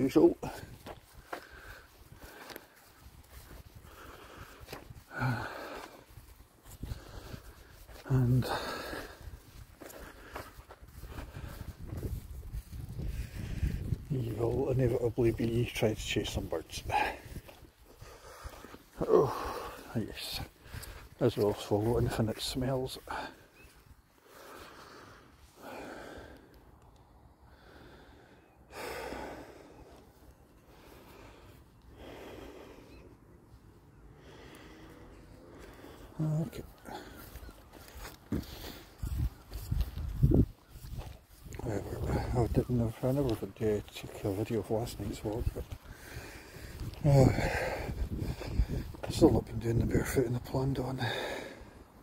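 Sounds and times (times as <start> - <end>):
barefoot footsteps on grass: 0.0 - 52.0
person breathing close to microphone: 0.4 - 14.1, 16.9 - 21.2, 23.1 - 41.0, 45.4 - 49.1, 51.0 - 52.0.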